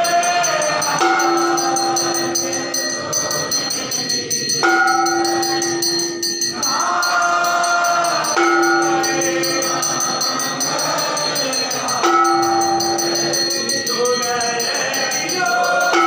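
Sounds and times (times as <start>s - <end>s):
devotional singing: 0.0s - 16.0s
ringing bells and small cymbals: 0.0s - 16.0s.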